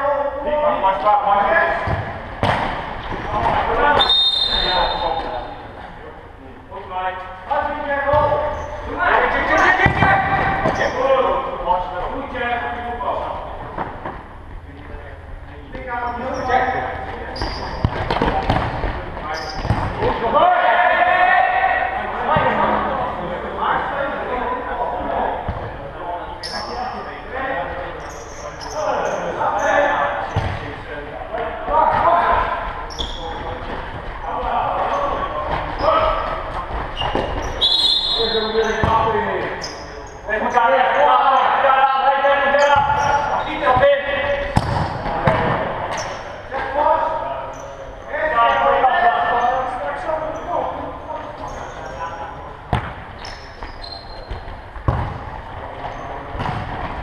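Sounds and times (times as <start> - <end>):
players calling out: 0.0 - 55.1
ball thudding on hall floor: 1.8 - 4.1, 44.5 - 45.7, 54.8 - 55.3.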